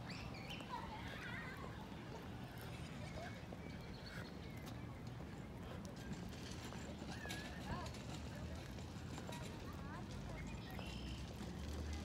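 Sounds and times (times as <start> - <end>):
distant voices: 0.0 - 12.0.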